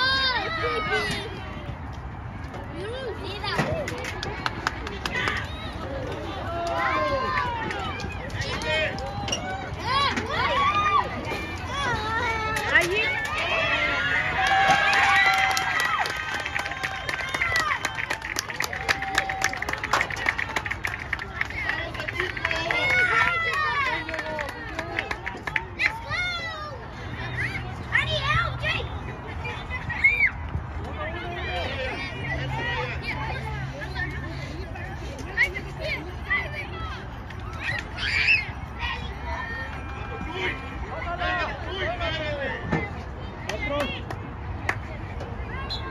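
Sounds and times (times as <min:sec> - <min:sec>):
crowd chatter: 0:00.0 - 0:45.9.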